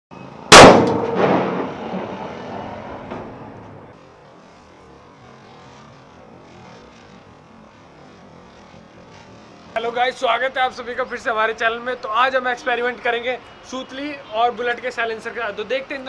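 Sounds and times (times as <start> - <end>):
firecracker bang in exhaust: 0.5 - 2.2.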